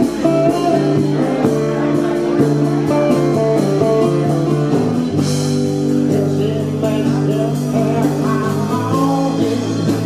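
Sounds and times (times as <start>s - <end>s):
bass guitar: 0.0s - 10.0s
strummed acoustic guitar: 0.0s - 10.0s.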